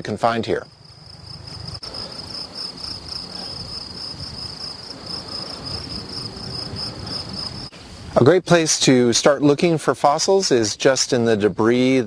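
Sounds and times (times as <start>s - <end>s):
insect trilling: 0.6s - 7.7s.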